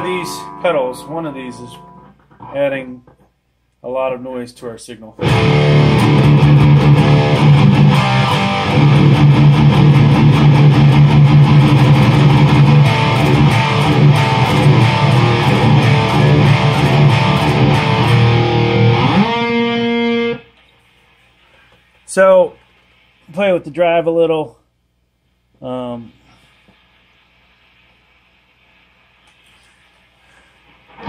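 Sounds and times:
distorted electric guitar riff: 0:00.0 - 0:03.2, 0:05.2 - 0:20.6.

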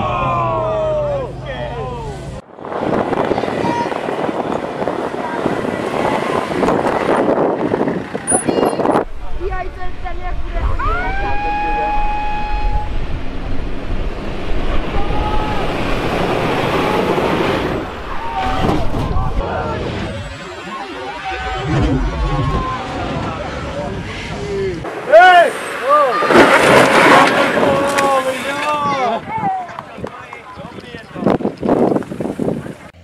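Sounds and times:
spectators shouting: 0:00.0 - 0:02.0, 0:10.8 - 0:13.0, 0:14.7 - 0:29.8
off-road engines running hard: 0:00.0 - 0:11.2, 0:11.8 - 0:33.0
long high toot: 0:11.2 - 0:13.1.

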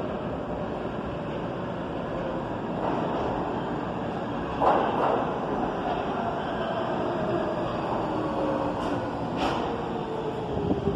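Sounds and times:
subway train rumbling: 0:00.0 - 0:10.9.

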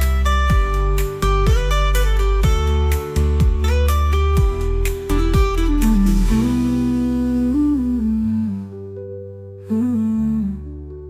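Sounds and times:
hummed melody: 0:00.0 - 0:11.0.

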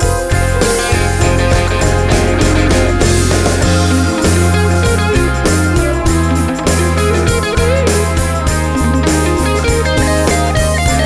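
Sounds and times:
instrumental rock music: 0:00.0 - 0:11.0.

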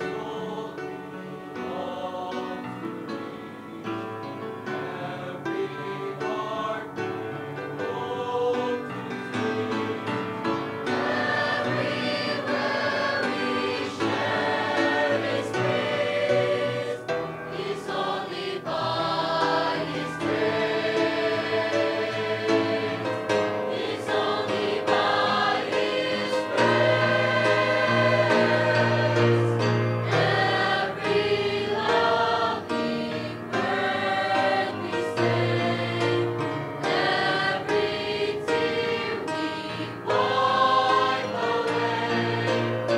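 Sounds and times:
choir singing a hymn: 0:00.0 - 0:42.9.

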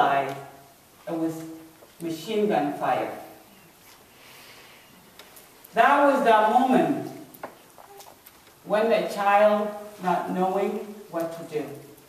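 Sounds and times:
woman speaking in reverberant hall: 0:00.0 - 0:03.4, 0:05.7 - 0:07.3, 0:08.6 - 0:11.9.

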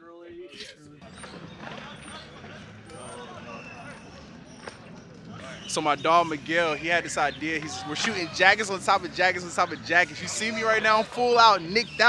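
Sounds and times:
city street rumble: 0:00.9 - 0:12.0.

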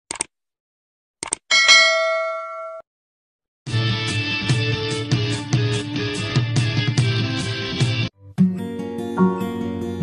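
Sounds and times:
quick clicks: 0:01.2 - 0:01.4
bell ding: 0:01.5 - 0:02.8
guitar music: 0:03.8 - 0:10.0.

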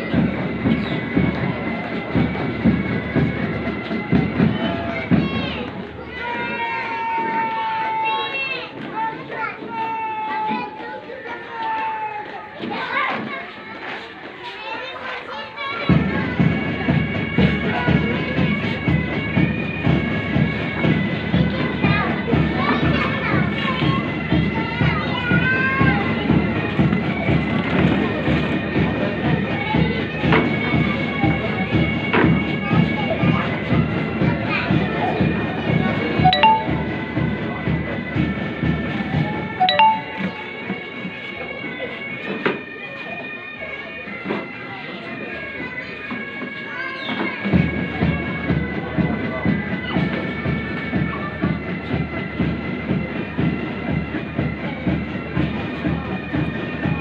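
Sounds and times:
drum beat: 0:36.6 - 0:37.4.

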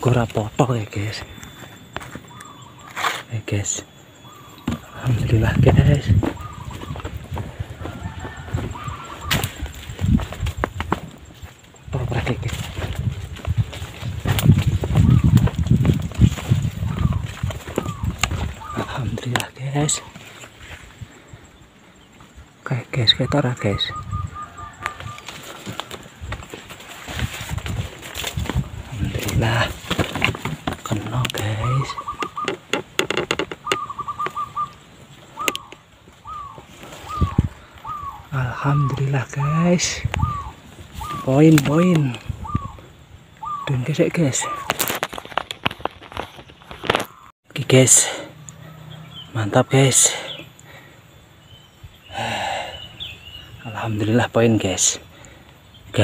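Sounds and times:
dove cooing: 0:03.9 - 0:19.2, 0:23.2 - 0:45.2
wind rumbling on microphone: 0:04.4 - 0:21.6, 0:23.6 - 0:47.3
rustling: 0:24.9 - 0:33.7.

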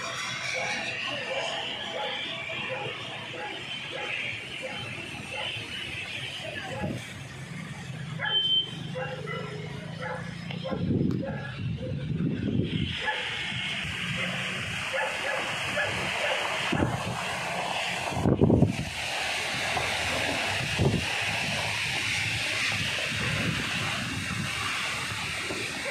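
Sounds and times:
heavy rain pouring: 0:00.0 - 0:10.0, 0:10.8 - 0:25.9.

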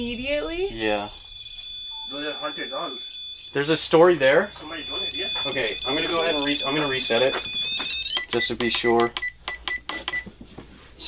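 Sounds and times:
high-pitched electronic alarm tone: 0:00.0 - 0:10.1
man speaking: 0:00.7 - 0:01.2, 0:03.6 - 0:07.4.

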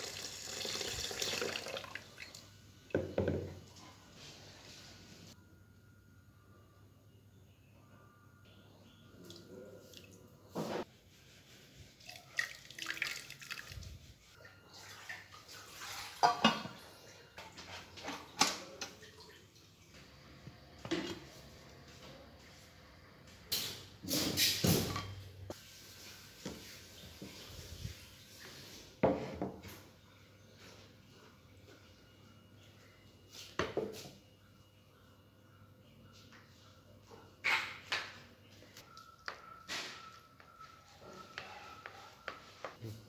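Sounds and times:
metal pot clattering: 0:16.2 - 0:16.8.

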